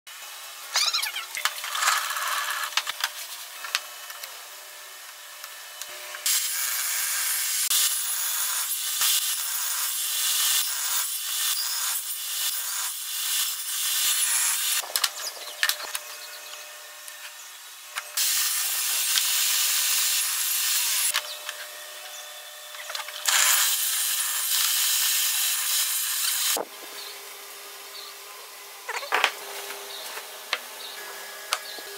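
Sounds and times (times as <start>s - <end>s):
table saw cutting wood: 0.2s - 31.9s.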